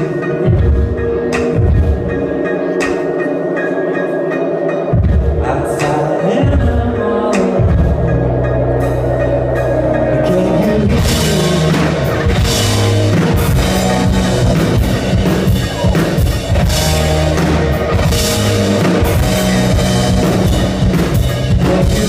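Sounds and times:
keyboard chords: 0:00.0 - 0:22.0
electric bass line: 0:04.9 - 0:22.0.

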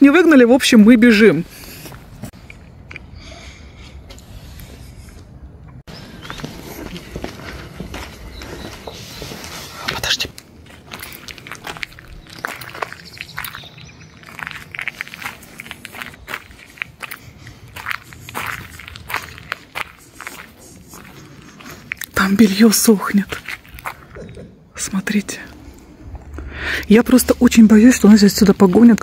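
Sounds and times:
footsteps on gravel: 0:05.9 - 0:24.2, 0:26.9 - 0:29.0.

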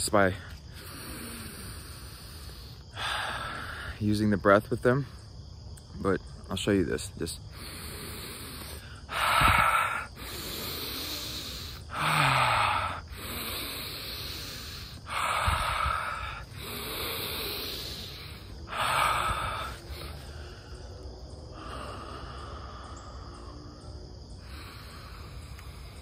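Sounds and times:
man breathing deeply: 0:00.4 - 0:04.1, 0:07.4 - 0:26.0.

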